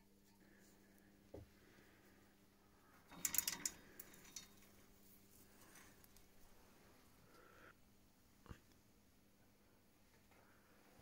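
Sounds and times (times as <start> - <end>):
metal spring scraping and rattling: 3.0 - 6.3.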